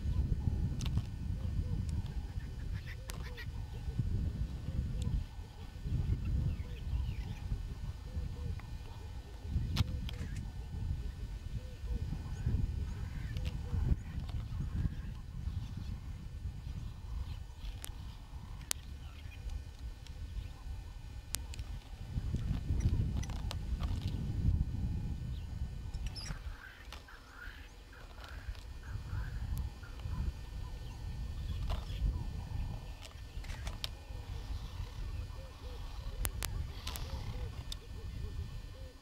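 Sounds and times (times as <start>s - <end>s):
low microphone rumble: 0.0s - 39.0s
wavering animal calls: 0.0s - 39.0s.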